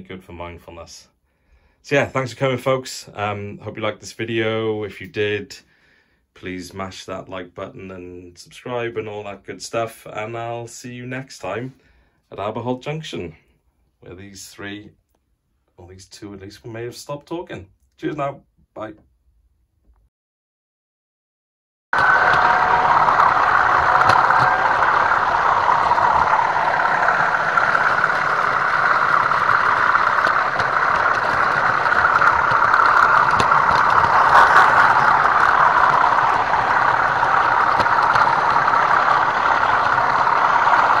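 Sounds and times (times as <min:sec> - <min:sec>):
model train running drone: 0:22.0 - 0:41.0.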